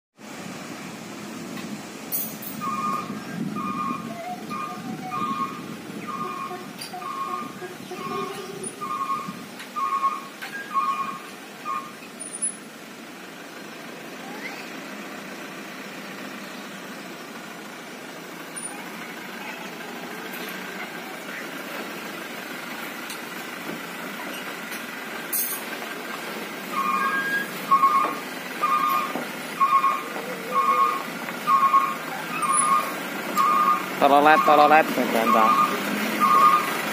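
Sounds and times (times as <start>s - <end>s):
diesel truck engine running: 0.2s - 36.9s
reversing alarm beeping: 2.6s - 12.1s, 26.7s - 36.9s.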